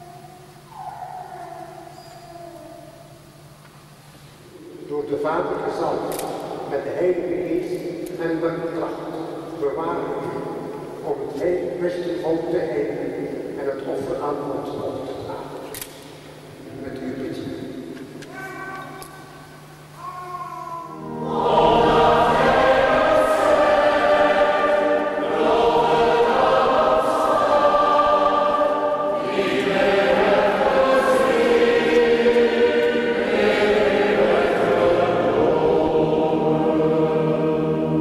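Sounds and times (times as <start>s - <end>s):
group singing a hymn: 21.0s - 38.0s.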